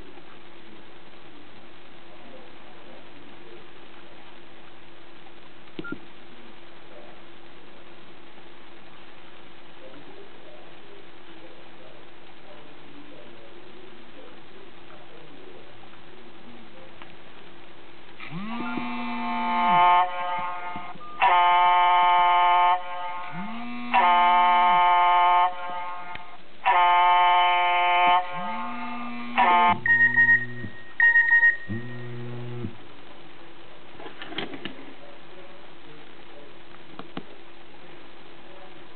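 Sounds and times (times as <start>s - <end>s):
faint hum and hiss: 0.0s - 38.9s
phone vibration buzz: 18.2s - 21.3s, 23.3s - 24.3s, 28.3s - 32.8s
electronic phone ring tone: 29.7s - 32.1s.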